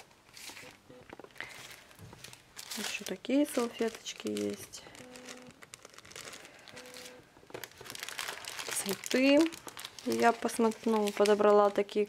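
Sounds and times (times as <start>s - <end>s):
plastic packet crinkling: 0.0s - 12.0s.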